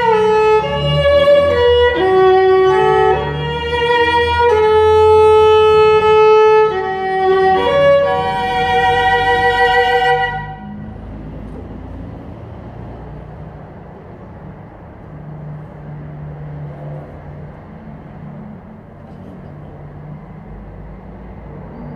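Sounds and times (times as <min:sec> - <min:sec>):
low engine hum: 0:00.0 - 0:21.9
road traffic noise: 0:00.0 - 0:21.9.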